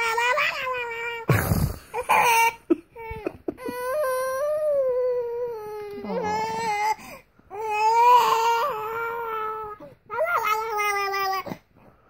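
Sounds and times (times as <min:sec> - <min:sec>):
baby crying: 0:02.0 - 0:11.6.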